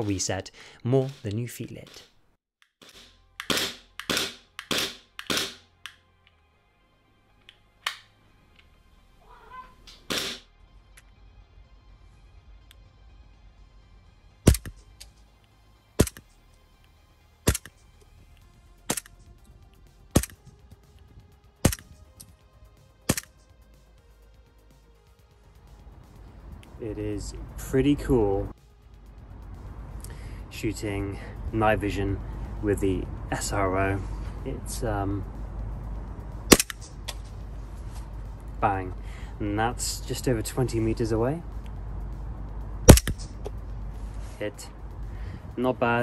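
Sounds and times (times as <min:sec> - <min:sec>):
airsoft pistol shots: 0:02.8 - 0:05.6, 0:10.1 - 0:10.4, 0:14.5 - 0:14.8, 0:16.0 - 0:16.2, 0:17.5 - 0:17.7, 0:20.1 - 0:20.4, 0:21.6 - 0:21.9, 0:23.1 - 0:23.3, 0:36.5 - 0:36.9, 0:42.9 - 0:43.3
pistol trigger clicks: 0:02.9 - 0:06.4, 0:14.5 - 0:15.1, 0:16.0 - 0:16.2, 0:17.5 - 0:17.7, 0:18.9 - 0:19.2, 0:20.2 - 0:20.4, 0:21.7 - 0:22.3, 0:23.1 - 0:23.4, 0:36.5 - 0:37.3, 0:42.9 - 0:43.3.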